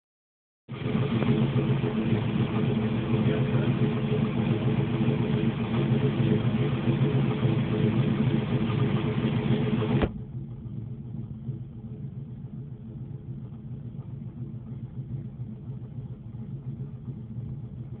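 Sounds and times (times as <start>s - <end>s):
car engine running: 0.7s - 18.0s.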